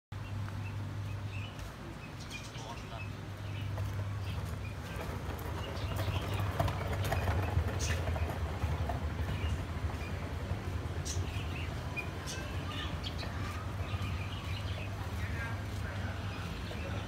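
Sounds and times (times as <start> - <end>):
caged birds chirping: 0.2 - 17.0.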